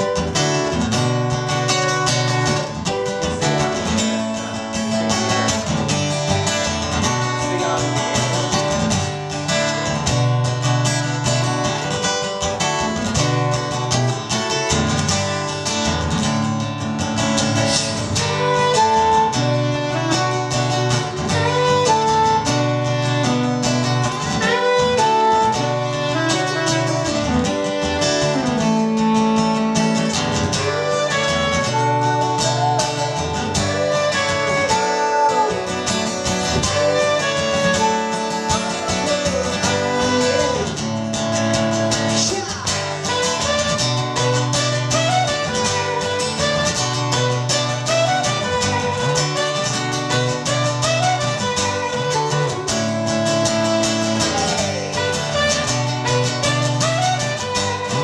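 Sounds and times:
saxophone melody: 0.0s - 14.3s, 17.3s - 58.0s
acoustic guitar strumming: 0.0s - 58.0s.

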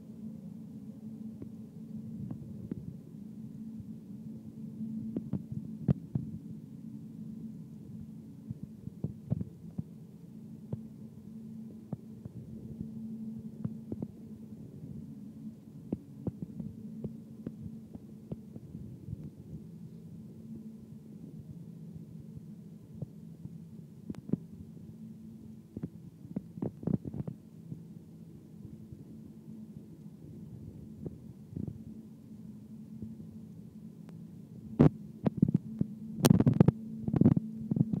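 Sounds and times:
low steady hum: 0.0s - 38.0s.

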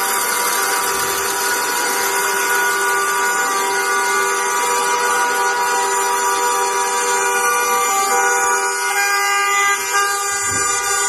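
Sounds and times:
vehicle horns blaring together: 0.0s - 11.0s.

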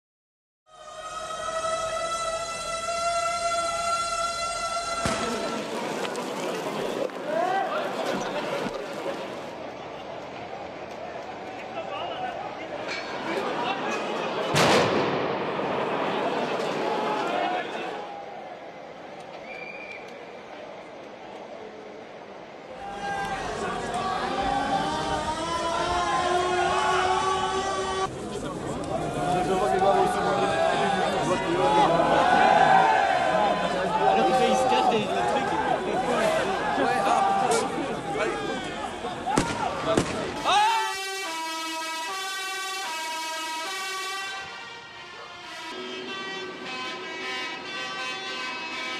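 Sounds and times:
two-tone emergency siren: 0.7s - 5.6s, 40.7s - 48.9s
crowd voices: 0.8s - 48.9s
loud bang: 5.0s - 5.7s, 14.5s - 16.9s.

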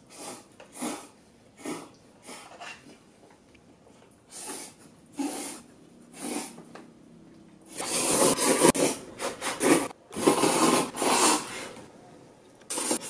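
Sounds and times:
person slurping noodles: 0.0s - 2.6s, 4.3s - 5.6s, 7.8s - 11.7s, 12.7s - 13.0s.

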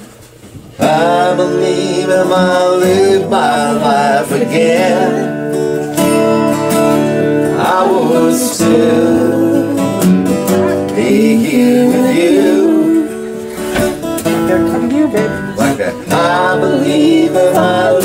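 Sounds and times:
acoustic guitar strumming: 0.7s - 18.0s
person singing: 0.8s - 5.4s, 7.5s - 13.5s, 14.5s - 18.0s.

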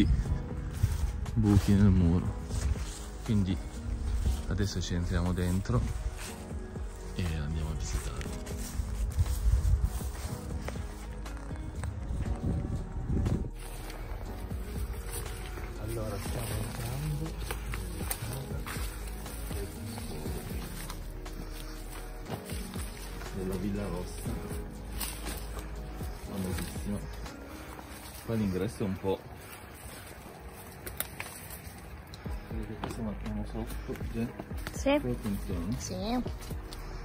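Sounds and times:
background music with held tones: 0.0s - 37.0s
footsteps through undergrowth: 0.0s - 37.0s.

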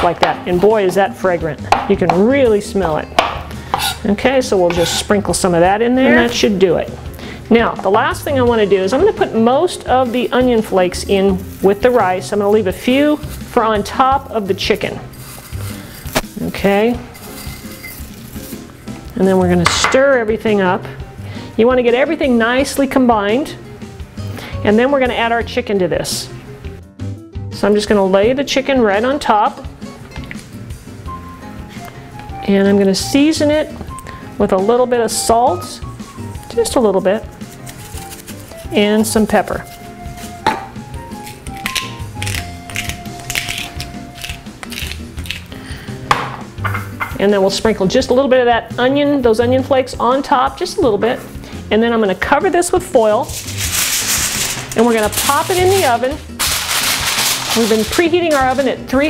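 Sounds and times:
soft background music: 0.0s - 59.0s
pepper mill grinding: 14.7s - 16.4s, 17.1s - 18.6s, 37.5s - 38.8s, 41.2s - 45.6s, 53.2s - 58.8s.

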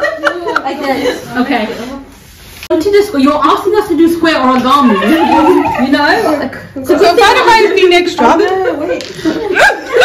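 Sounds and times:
women chatting and chuckling: 4.7s - 10.0s.

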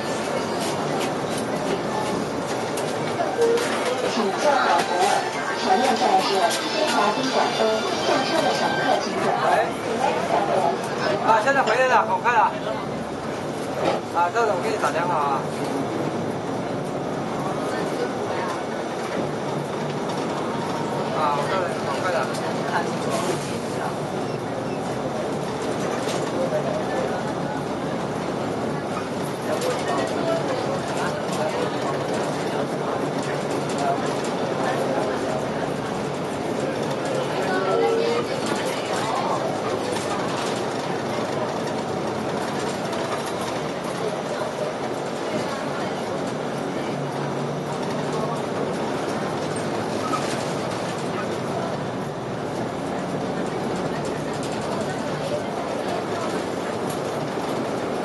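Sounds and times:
bus engine and road noise: 0.0s - 58.0s
passengers talking indistinctly: 0.0s - 58.0s.

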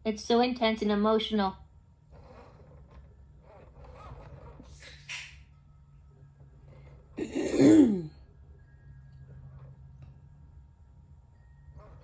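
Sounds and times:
person sneezing loudly: 7.3s - 8.1s.

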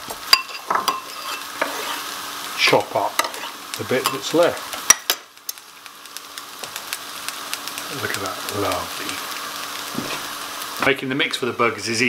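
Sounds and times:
onions sizzling in a pan: 0.0s - 12.0s.

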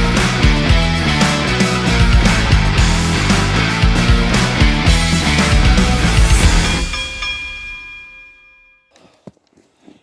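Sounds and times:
rock music held chord: 0.0s - 8.5s.

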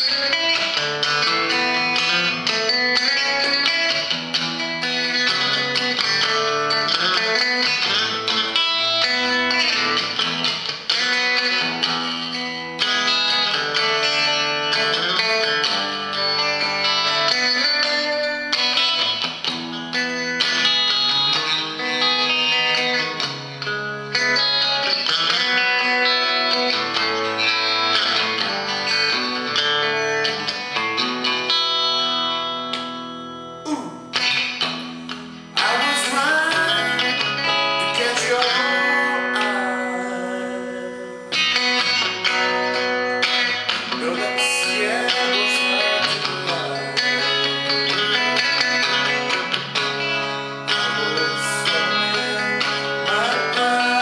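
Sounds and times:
electric guitar chords and melody: 0.0s - 54.0s.

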